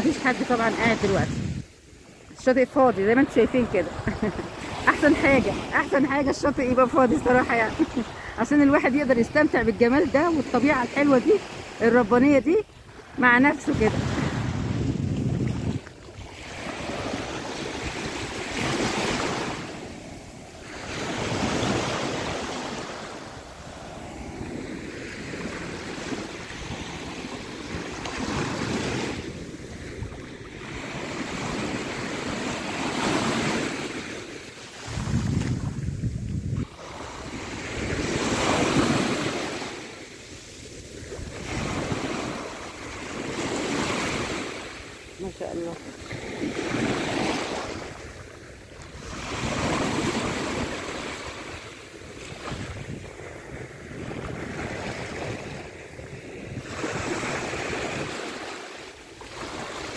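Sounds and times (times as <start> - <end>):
wind buffeting microphone: 0.0 - 11.4, 13.4 - 20.2, 34.8 - 39.4, 52.3 - 58.3
small waves breaking on beach: 0.0 - 59.9.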